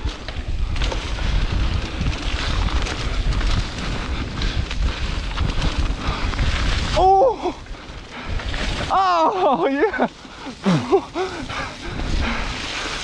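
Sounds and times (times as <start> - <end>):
bike tyres on dirt trail: 0.0 - 13.0
wind buffeting microphone: 0.0 - 13.0.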